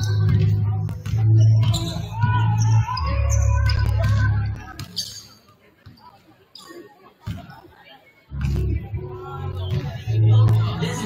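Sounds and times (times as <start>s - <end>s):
faint echoing voices: 0.0s - 11.0s.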